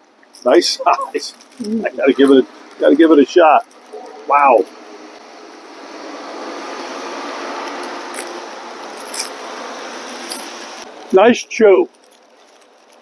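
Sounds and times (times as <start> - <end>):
vehicle passing by: 0.7 - 11.4.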